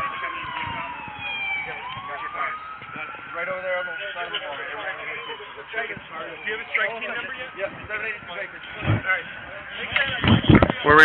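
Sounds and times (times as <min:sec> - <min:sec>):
people talking: 0:01.6 - 0:11.0.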